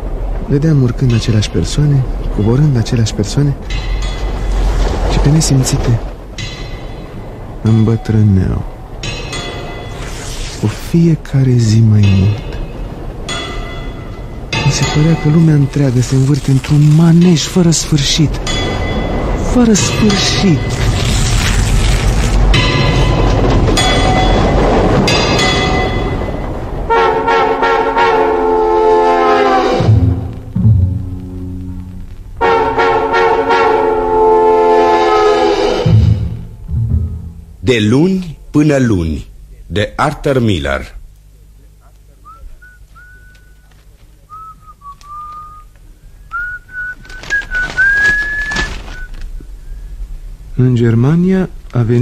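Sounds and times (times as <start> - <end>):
subway train rumble: 0.0 - 21.1, 22.4 - 38.1, 41.3 - 51.8
steady low hum: 0.0 - 35.0, 35.8 - 52.0
rustling scraping noise: 3.7 - 6.2, 18.9 - 25.9, 46.7 - 49.5
train horn: 26.9 - 30.4, 32.4 - 36.4
person whistling a tune: 42.2 - 43.7, 44.3 - 49.2.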